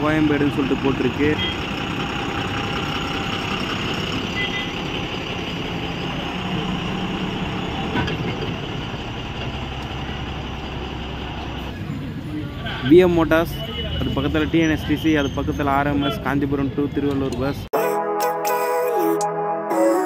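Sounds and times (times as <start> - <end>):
diesel bus engine running: 0.0 - 12.9
traffic noise: 0.0 - 17.7.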